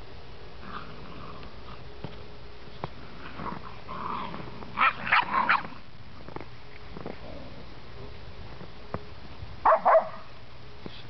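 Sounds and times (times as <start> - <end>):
puppies yelping while playing: 3.3 - 5.8.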